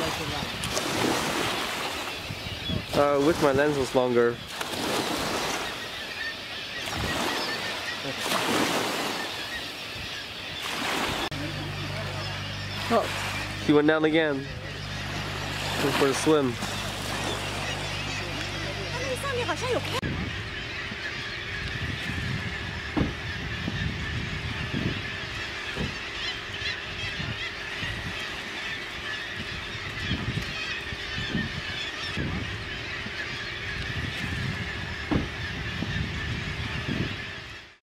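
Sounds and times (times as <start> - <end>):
wind buffeting microphone: 0.0 - 5.7, 6.8 - 7.4, 9.9 - 28.4, 29.4 - 37.5
seabirds calling: 0.0 - 37.8.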